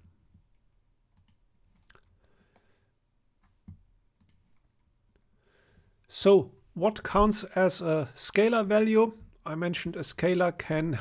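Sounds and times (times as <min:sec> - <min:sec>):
faint clicks: 0:01.2 - 0:05.4.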